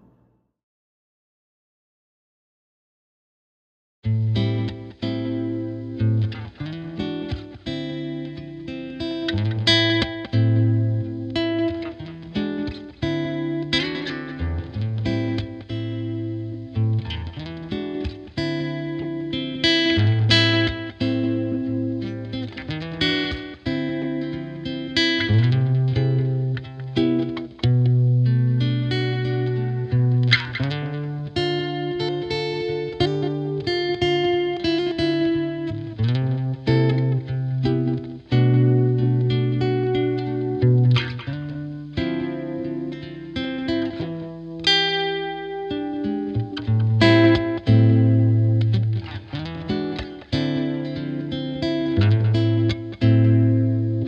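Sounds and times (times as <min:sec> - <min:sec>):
acoustic guitar plucked melody: 0:04.1 - 0:54.0.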